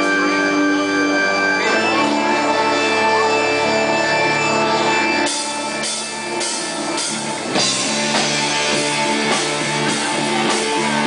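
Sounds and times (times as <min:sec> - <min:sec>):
electric guitars playing chords: 0:00.0 - 0:11.0
drum kit hits: 0:05.3 - 0:11.0.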